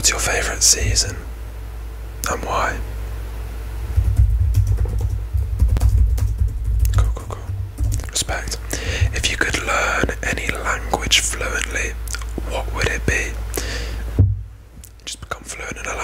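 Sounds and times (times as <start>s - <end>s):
close-up whispering: 0.0s - 1.2s, 2.2s - 2.9s, 7.0s - 13.8s, 15.0s - 16.0s
low microphone rumble: 0.0s - 2.1s, 2.8s - 13.2s, 14.0s - 14.8s
sharp clicks: 4.0s - 8.2s.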